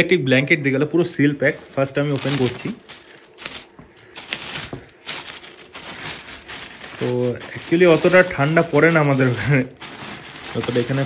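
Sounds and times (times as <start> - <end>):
plastic wrapping crinkling: 0.3 - 11.0.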